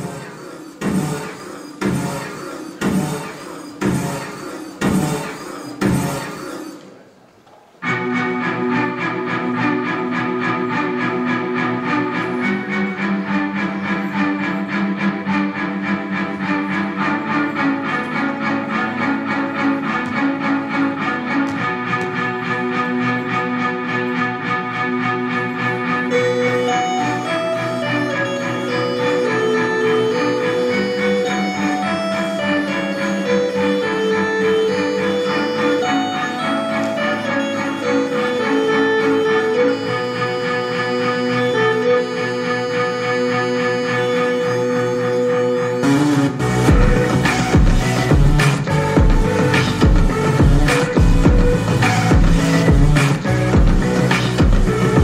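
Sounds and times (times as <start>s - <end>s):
instrumental music with held notes: 0.0s - 55.0s
higher stepping melody line: 7.8s - 55.0s.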